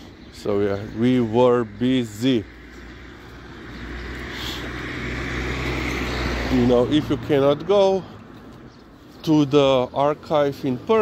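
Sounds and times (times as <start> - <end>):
vehicle engine and tyre noise: 0.0 - 11.0.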